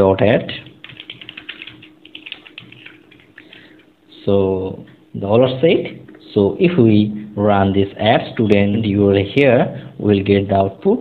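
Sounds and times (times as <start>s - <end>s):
computer keyboard typing: 0.6s - 3.9s.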